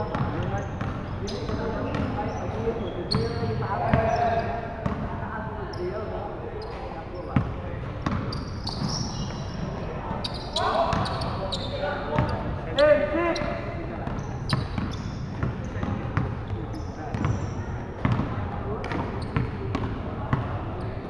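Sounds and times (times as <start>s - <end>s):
sneakers squeaking: 0.0s - 21.0s
players calling out: 8.2s - 18.3s.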